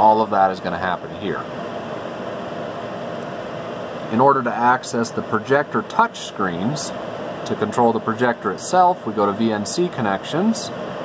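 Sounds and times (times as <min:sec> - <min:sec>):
faint constant hum: 0:00.0 - 0:11.0
fan and ventilation whoosh: 0:00.0 - 0:11.0.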